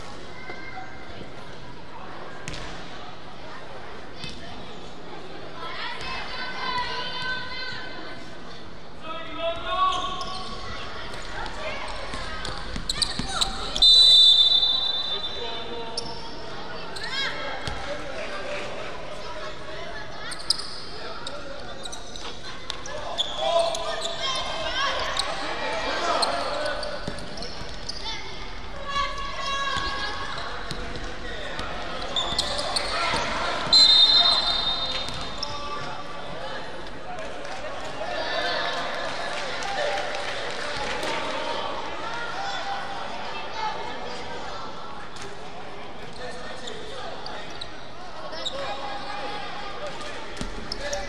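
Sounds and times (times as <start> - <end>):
referee's whistle: 12.9 - 16.2, 32.2 - 35.5.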